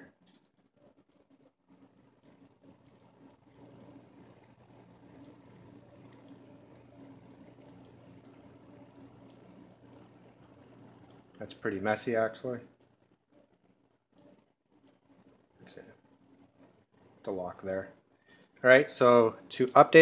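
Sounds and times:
faint low hum: 0:00.0 - 0:20.0
computer mouse clicks: 0:00.2 - 0:08.5, 0:09.2 - 0:10.2, 0:10.9 - 0:11.5, 0:14.1 - 0:15.3.

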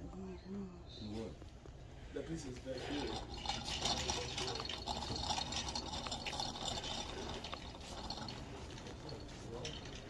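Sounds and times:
shopping cart rolling rattle: 0:02.8 - 0:10.0.

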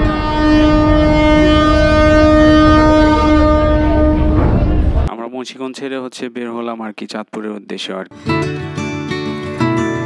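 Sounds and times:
boat horn long blast: 0:00.0 - 0:05.1
low rumble: 0:00.0 - 0:05.1.

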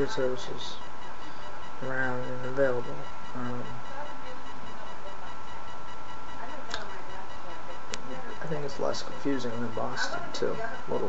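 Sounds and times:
faint high steady tone: 0:00.0 - 0:11.0
microphone hiss: 0:00.0 - 0:11.0.

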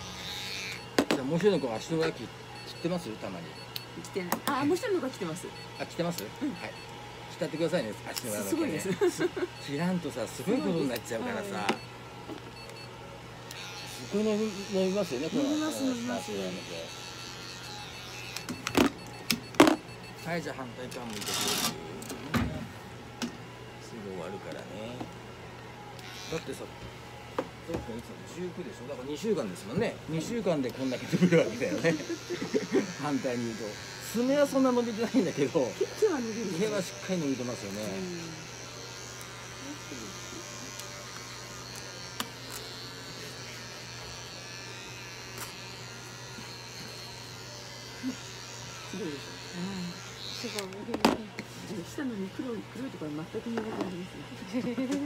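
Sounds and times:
electric clipper buzzing: 0:00.0 - 0:22.4, 0:24.0 - 0:55.0.

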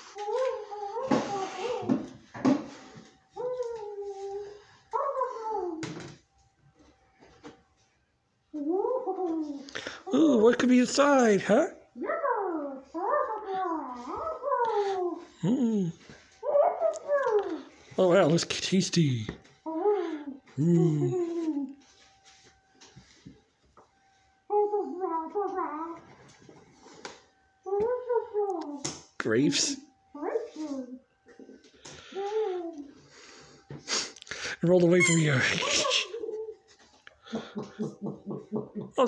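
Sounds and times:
person humming: 0:14.5 - 0:16.0, 0:19.7 - 0:21.7.

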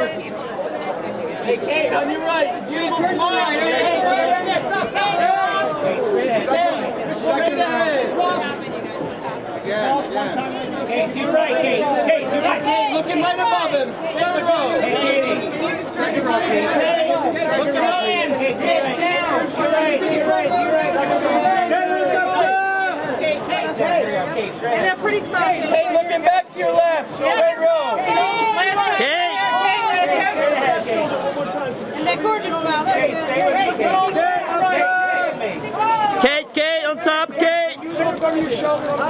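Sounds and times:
overlapping chatter: 0:00.0 - 0:39.0
photographers shouting: 0:01.7 - 0:08.2, 0:11.0 - 0:39.0.

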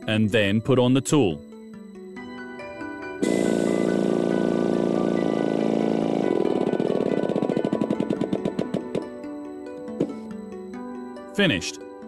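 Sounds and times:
riveting actuator buzzing and pulsing: 0:03.2 - 0:09.2.

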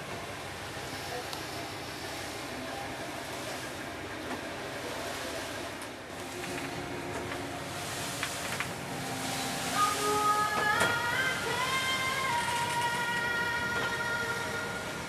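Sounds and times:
boat engine rumble: 0:00.0 - 0:15.0
sea noise: 0:00.0 - 0:15.0.

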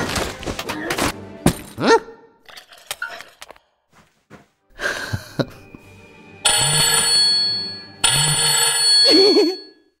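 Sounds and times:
telephone ringing: 0:06.4 - 0:10.0.

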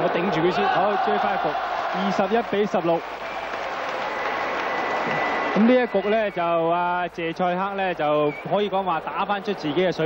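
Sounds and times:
audience applauding: 0:00.0 - 0:07.1.

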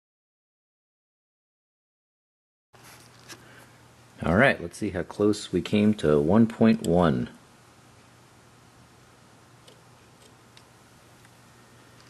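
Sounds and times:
steady low hum: 0:02.8 - 0:12.0.

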